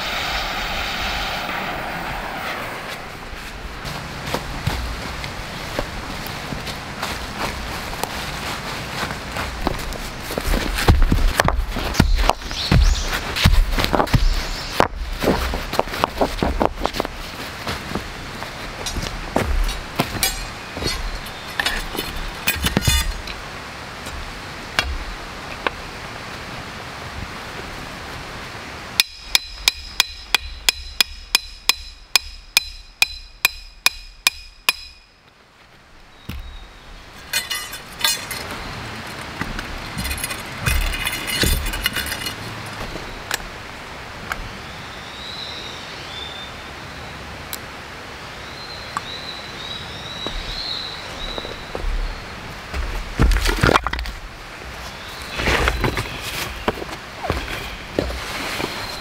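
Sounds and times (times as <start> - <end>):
hammer striking metal pole: 20.2 - 21.1, 29.0 - 35.1.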